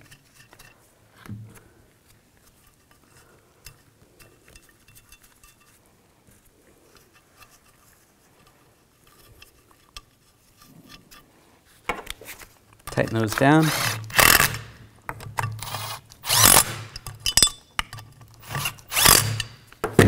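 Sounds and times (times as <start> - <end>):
metallic clicks and scrapes: 0.0 - 1.3, 2.0 - 19.8.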